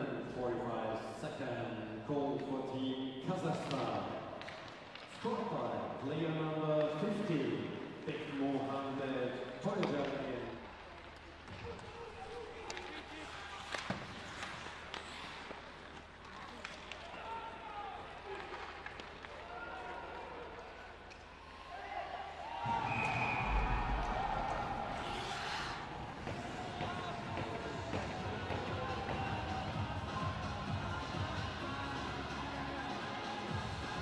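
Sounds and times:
hockey sticks and skates on ice: 0:03.4 - 0:05.5, 0:09.5 - 0:21.4, 0:25.0 - 0:30.2
crowd noise: 0:10.5 - 0:34.0.

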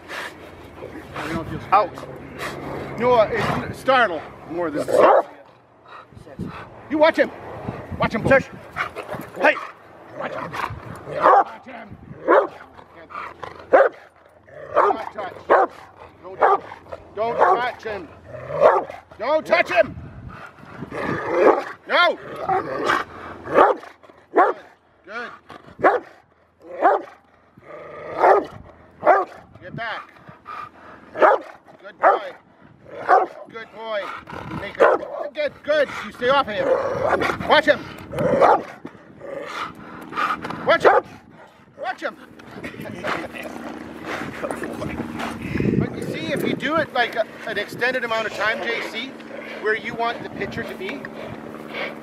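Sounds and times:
dog barking: 0:04.9 - 0:05.4, 0:11.2 - 0:11.6, 0:12.3 - 0:12.6, 0:13.7 - 0:14.0, 0:14.8 - 0:15.8, 0:16.4 - 0:16.7, 0:17.4 - 0:17.7, 0:18.6 - 0:19.0, 0:23.5 - 0:23.8, 0:24.4 - 0:24.7, 0:25.8 - 0:26.2, 0:26.8 - 0:27.1, 0:28.2 - 0:29.4, 0:31.2 - 0:32.4, 0:33.0 - 0:33.4, 0:34.8 - 0:35.1, 0:38.4 - 0:38.7, 0:40.8 - 0:41.1.

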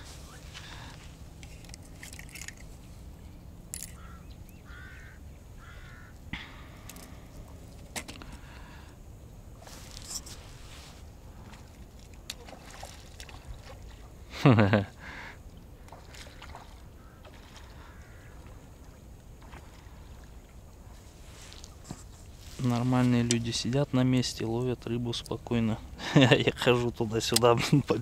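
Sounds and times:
bird calls: 0:02.3 - 0:07.5, 0:16.0 - 0:19.8.

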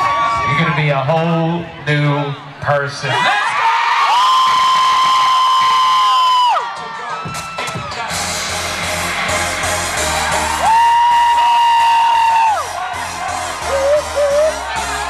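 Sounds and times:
crowd cheering: 0:00.0 - 0:01.1, 0:03.0 - 0:15.0
long high-pitched scream: 0:04.0 - 0:06.6, 0:10.5 - 0:12.8
pop music with steady beat: 0:04.5 - 0:15.0.

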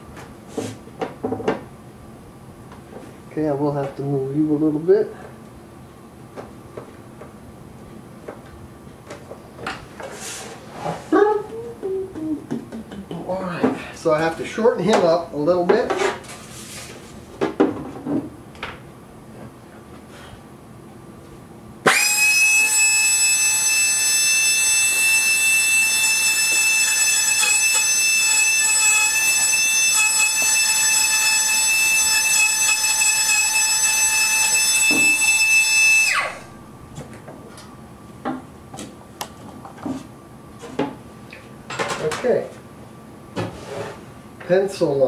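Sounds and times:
rotary tool whining: 0:21.9 - 0:36.5.

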